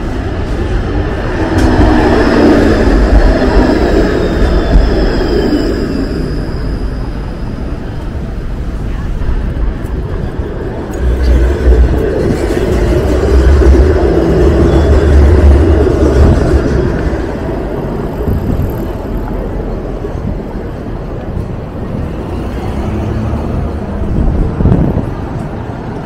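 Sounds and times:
city traffic noise: 0.0 - 26.0
streetcar rumbling past on tracks: 0.0 - 26.0.

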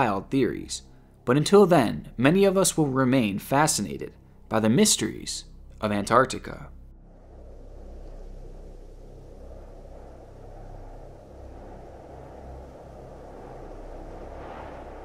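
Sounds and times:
low steady rumbling: 0.0 - 15.0.

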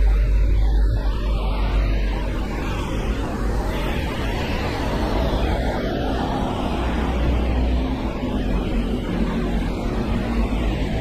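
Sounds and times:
traffic on wet roads: 0.0 - 11.0.

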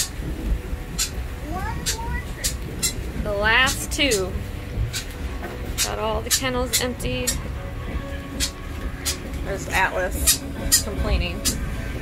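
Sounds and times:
fox whining: 8.3 - 9.3.

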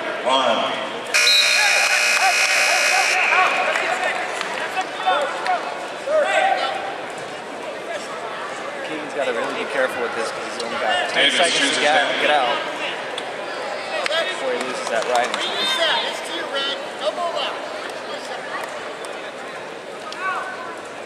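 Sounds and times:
crowd voices and shouts: 0.0 - 21.0
scoreboard buzzer: 1.2 - 3.7.

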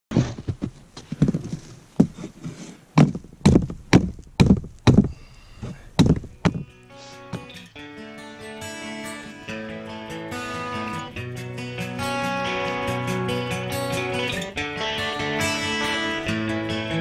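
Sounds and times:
acoustic guitar music: 1.6 - 17.0
hatchet knocking wooden stake: 3.0 - 5.1, 6.0 - 6.7.

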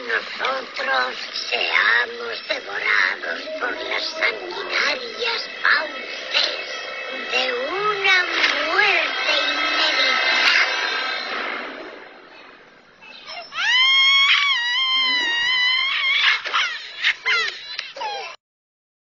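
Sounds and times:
cartoon alien voice moaning: 13.3 - 16.3.

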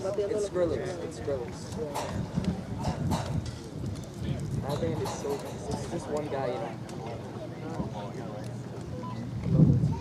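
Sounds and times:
people talking: 0.0 - 3.4, 4.2 - 10.0.

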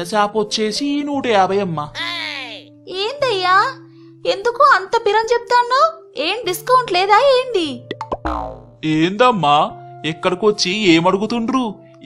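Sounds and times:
soft background music: 0.0 - 12.0
falling-pitch cartoon boing: 8.0 - 8.9.

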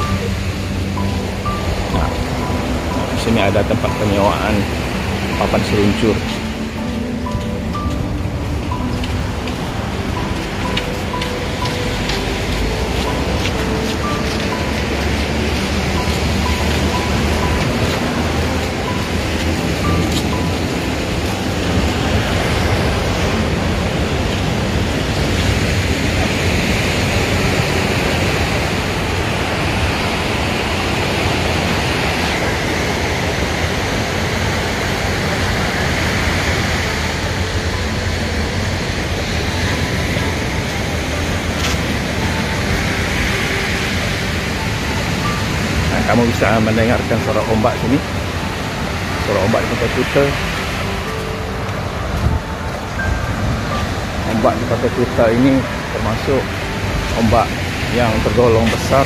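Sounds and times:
ocean surf breaking: 0.0 - 59.0.

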